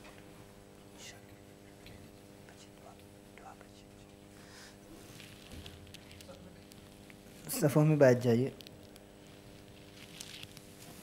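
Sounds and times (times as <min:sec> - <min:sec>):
low electrical hum: 0:00.0 - 0:11.0
faint whispering: 0:01.0 - 0:01.8, 0:02.4 - 0:04.3
small rustles and clicks: 0:05.0 - 0:07.4, 0:08.5 - 0:11.0.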